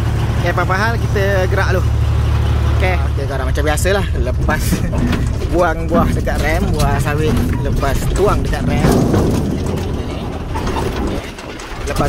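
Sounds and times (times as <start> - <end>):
lorry engine rumble: 0.0 - 12.0
mechanical rattling and clicking: 0.0 - 12.0.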